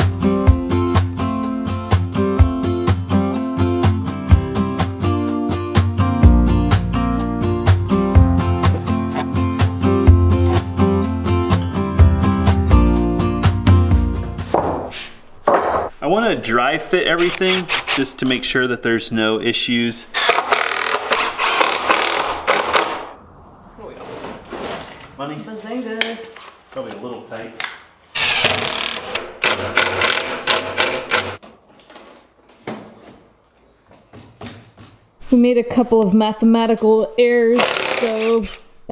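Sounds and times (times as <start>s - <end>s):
acoustic guitar music: 0.0s - 14.5s
wooden boards knocking: 14.5s - 16.0s.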